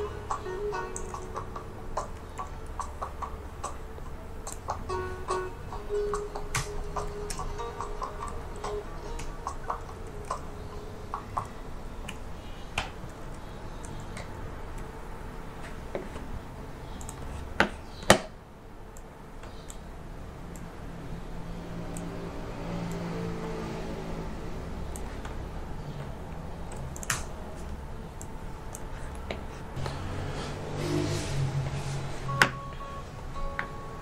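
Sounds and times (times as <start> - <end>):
faint background music: 0.0 - 15.6
mouse and keyboard clicking: 0.3 - 3.8, 4.4 - 4.8, 6.1 - 10.5, 16.9 - 17.4.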